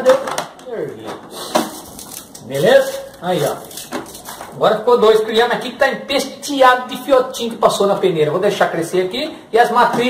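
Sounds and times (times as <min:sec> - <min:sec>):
man speaking: 0:02.4 - 0:03.8, 0:04.5 - 0:10.0.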